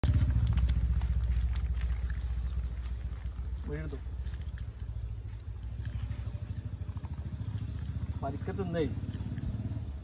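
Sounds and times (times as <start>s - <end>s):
engine idling: 0.0s - 10.0s.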